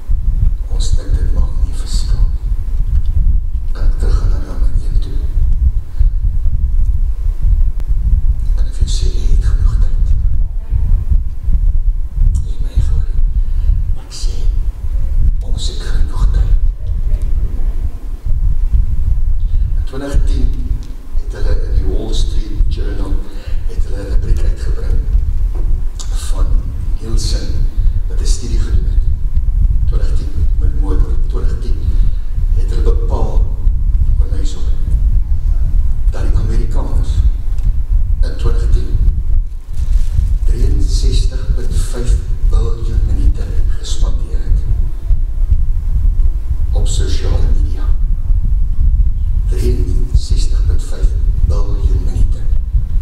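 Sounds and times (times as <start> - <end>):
loud low rumble: 0.0 - 53.0
man's voice: 0.7 - 2.5, 3.7 - 5.6, 8.5 - 10.3, 12.2 - 14.6, 15.4 - 16.9, 19.6 - 25.2, 26.0 - 29.2, 29.9 - 35.0, 36.1 - 37.4, 38.2 - 39.1, 40.3 - 44.8, 46.7 - 48.1, 49.4 - 52.6.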